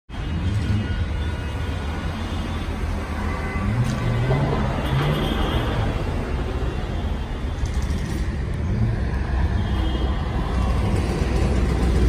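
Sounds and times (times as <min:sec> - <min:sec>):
road traffic noise: 0:00.1 - 0:12.0.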